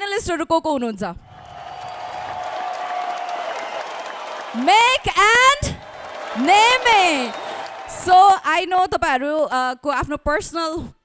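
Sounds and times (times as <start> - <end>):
audience clapping: 1.3 - 8.8.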